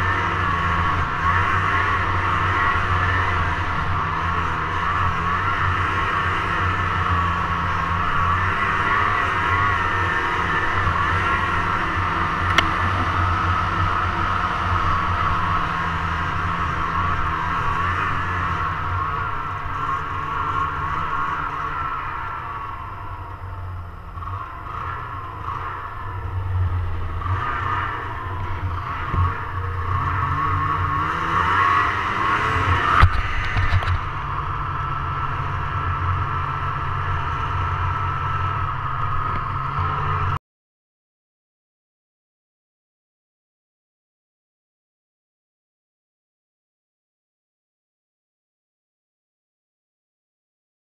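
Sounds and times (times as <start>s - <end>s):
snowmobile engine running: 0.0s - 40.4s.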